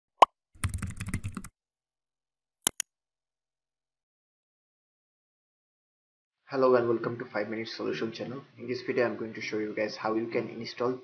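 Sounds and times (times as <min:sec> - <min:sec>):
keyboard typing clicks: 0:00.6 - 0:01.5.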